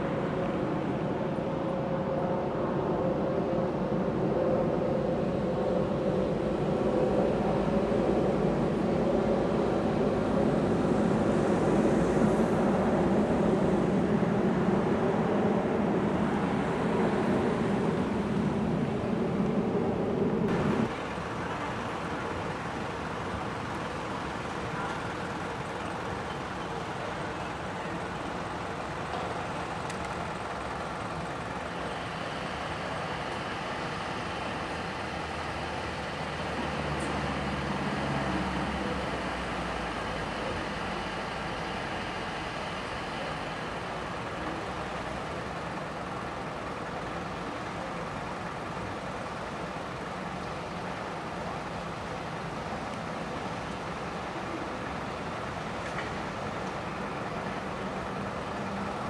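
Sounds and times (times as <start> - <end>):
steady traffic hum: 0.0 - 59.0
vehicle engine: 5.0 - 59.0
faint voices: 20.6 - 34.8.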